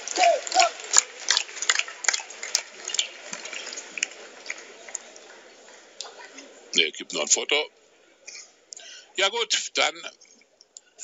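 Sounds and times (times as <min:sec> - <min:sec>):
crowd applauding: 0:00.0 - 0:06.3.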